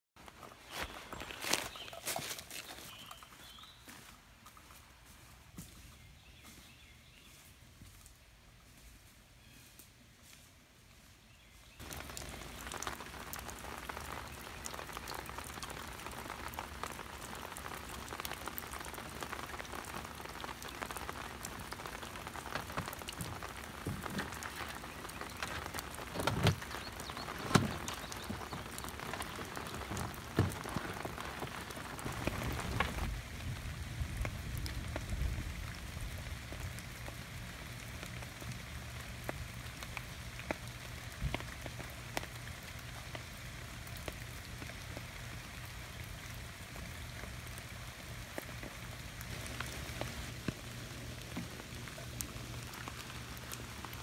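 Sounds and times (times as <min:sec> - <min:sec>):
rain pattering: 0:00.2 - 0:06.3, 0:11.6 - 0:54.0.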